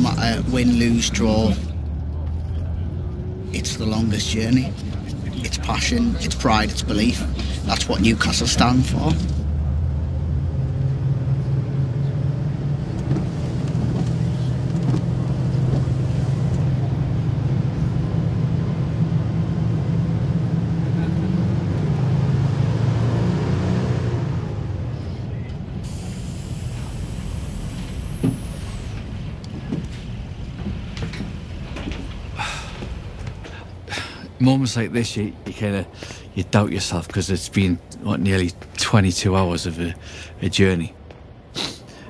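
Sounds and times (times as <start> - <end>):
bus engine and road noise: 0.0 - 42.0
air brakes hissing: 25.8 - 30.2, 30.8 - 34.4, 41.5 - 42.0.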